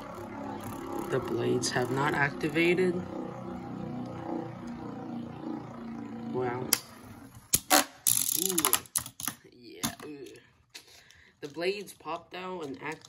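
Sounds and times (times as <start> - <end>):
spinning tops whirring: 0.0 - 9.3
spinning tops clacking and rattling: 7.5 - 9.4.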